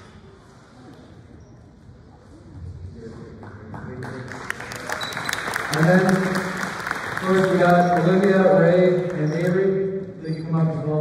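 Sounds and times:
crowd applause: 4.0 - 9.3.

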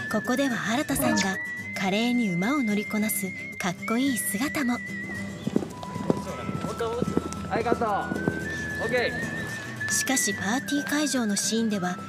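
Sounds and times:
horse hoofbeats on sand: 5.0 - 11.0.

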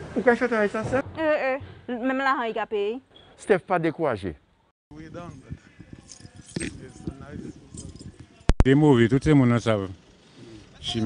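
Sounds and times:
men talking: 3.5 - 11.0.

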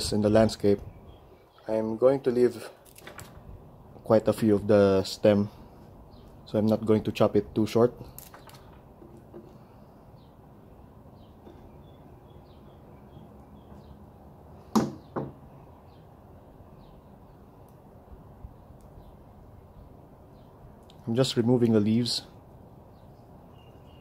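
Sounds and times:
bird chirps: 9.5 - 17.6, 22.7 - 24.0.

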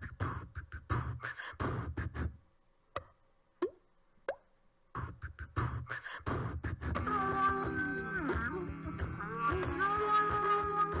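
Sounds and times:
beatbox mouth percussion: 0.0 - 11.0.

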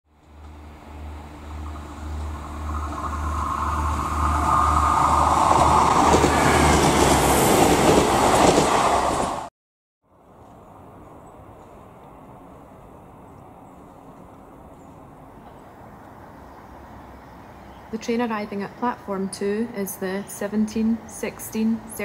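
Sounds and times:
train running: 0.1 - 9.5.

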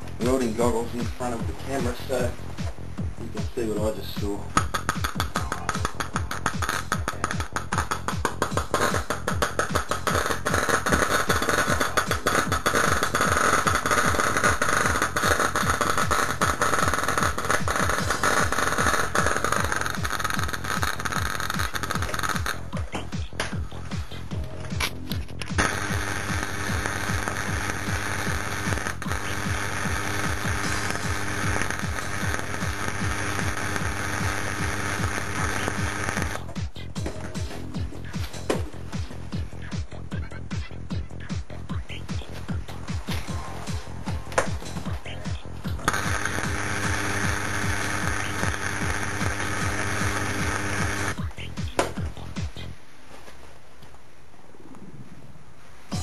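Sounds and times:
electric arc crackling and sizzling: 3.9 - 22.7, 24.9 - 36.5, 45.8 - 51.2
steady low buzz: 25.6 - 36.8, 41.1 - 52.8.

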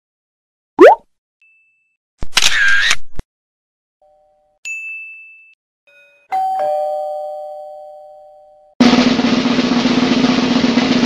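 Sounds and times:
doorbell ding-dong: 4.0 - 8.8.

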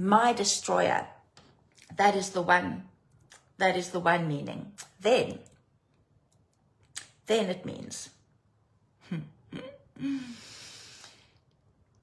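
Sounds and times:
breathy exhale: 10.0 - 11.4.

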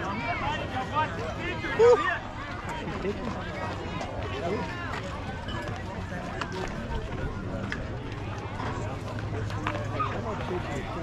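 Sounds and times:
spectators chatting: 0.0 - 11.0.

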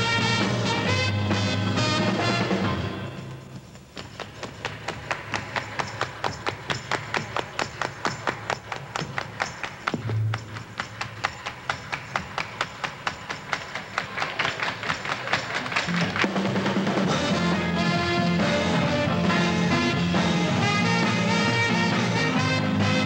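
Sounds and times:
full band playing: 0.0 - 3.4, 15.6 - 23.0
low bass notes: 15.9 - 23.0.

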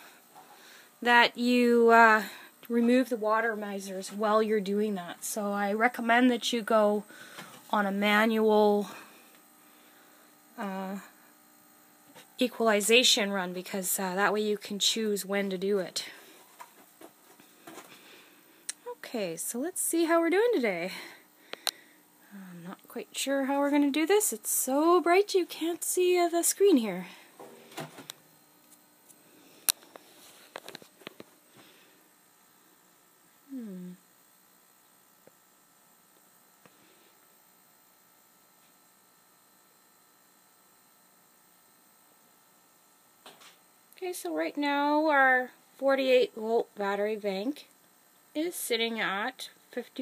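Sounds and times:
thin electrical hum: 0.0 - 50.0.

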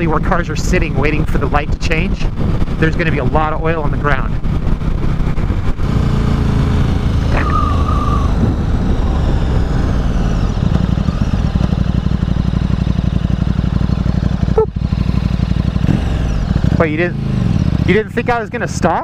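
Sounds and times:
motorcycle engine running: 0.0 - 19.0
road and wind noise: 0.0 - 19.0.

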